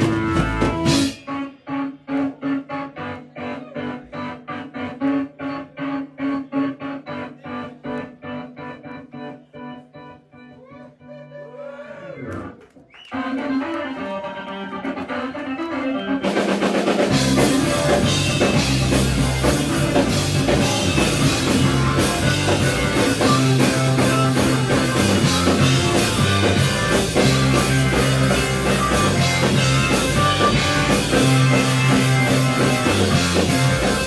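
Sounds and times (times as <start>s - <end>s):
band with drums: 0.0s - 2.7s, 14.7s - 34.0s
electric organ staccato chords: 0.0s - 10.5s, 13.1s - 34.0s.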